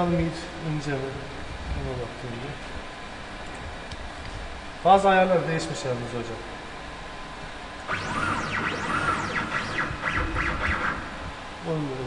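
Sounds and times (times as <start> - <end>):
stepper motor whine sweeping: 7.9 - 11.7.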